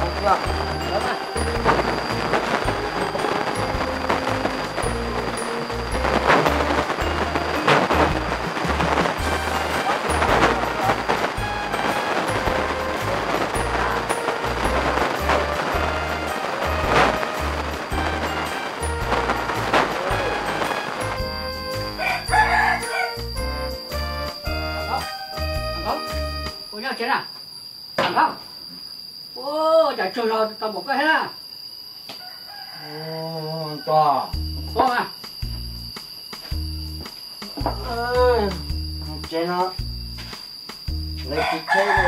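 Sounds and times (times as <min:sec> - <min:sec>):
music with rhythmic bass beat: 0:00.0 - 0:26.6, 0:34.3 - 0:41.4
rooster crowing: 0:19.7 - 0:23.4, 0:32.1 - 0:34.4, 0:41.3 - 0:42.0.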